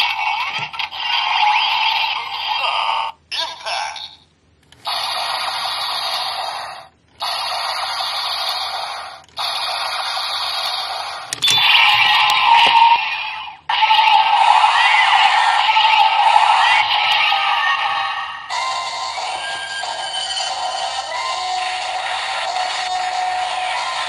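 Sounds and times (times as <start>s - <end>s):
toy electronic sound effects: 4.8s - 24.0s.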